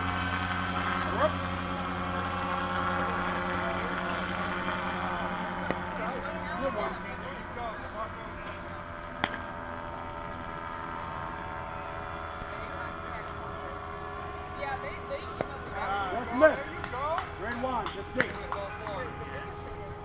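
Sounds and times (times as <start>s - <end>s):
steady background hum: 0.0s - 20.0s.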